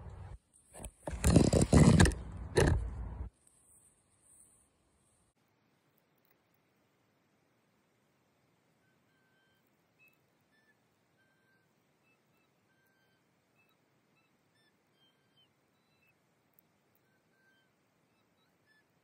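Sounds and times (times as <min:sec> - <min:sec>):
faint background hiss: 0:02.2 - 0:19.0.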